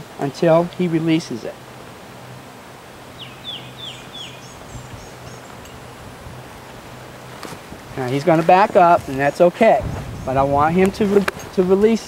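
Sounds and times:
low steady hum: 0.0s - 12.0s
bird calling: 3.1s - 8.5s.

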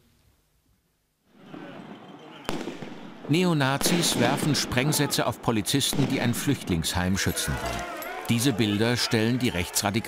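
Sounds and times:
riot noise with shouting: 1.4s - 2.9s, 3.7s - 10.0s
firecracker bang: 1.4s - 5.1s, 5.9s - 6.6s.

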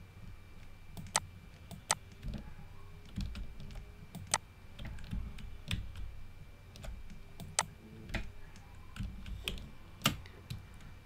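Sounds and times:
computer mouse clicking: 0.6s - 2.4s, 3.0s - 6.1s, 6.7s - 10.9s.

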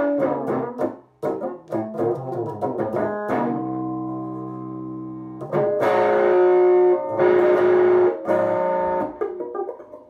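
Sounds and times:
electric guitar chords ringing: 0.0s - 9.3s.

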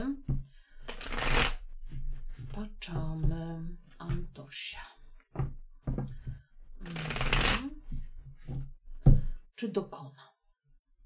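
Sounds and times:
cards shuffled by hand: 0.9s - 1.6s, 6.8s - 7.8s.

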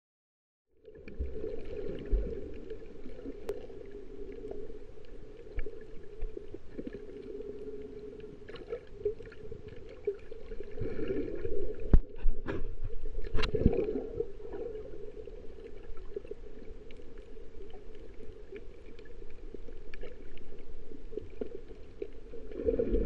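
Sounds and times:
underwater rumble: 0.7s - 23.0s.

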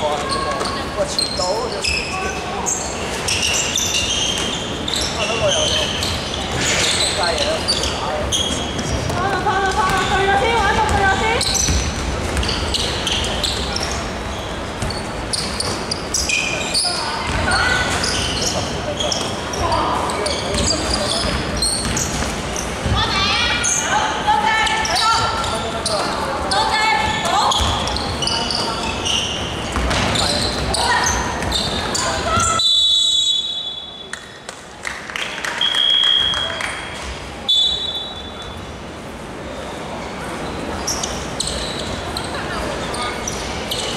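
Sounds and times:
sneakers squeaking on floor: 0.0s - 24.0s, 24.6s - 34.4s, 39.4s - 43.9s
basketball bouncing on court: 8.6s - 12.7s, 17.3s - 18.1s, 20.5s - 23.1s, 27.1s - 28.2s, 29.7s - 32.6s.

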